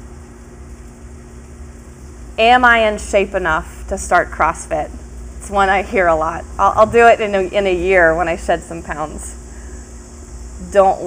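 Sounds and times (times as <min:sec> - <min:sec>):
steady low hum: 0:01.2 - 0:11.0
faint hiss: 0:02.1 - 0:11.0.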